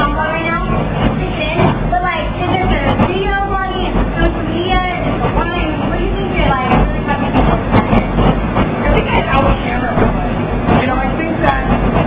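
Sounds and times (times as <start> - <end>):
crowd chatter: 0.0 - 12.0
indistinct talking: 0.0 - 12.0.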